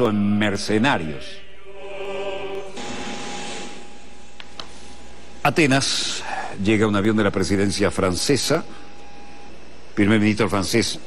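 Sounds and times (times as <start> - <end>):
jet engines running: 1.6 - 11.0.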